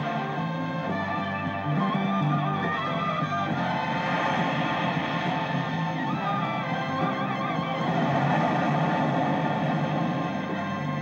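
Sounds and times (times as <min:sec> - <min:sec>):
film score sustained tones: 0:00.0 - 0:11.0
rushing hissing noise: 0:03.4 - 0:11.0.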